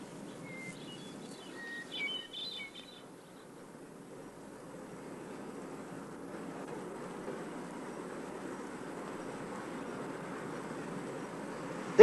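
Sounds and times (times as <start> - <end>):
small birds chirping: 0.0 - 6.1
outdoor background hiss: 0.0 - 12.0.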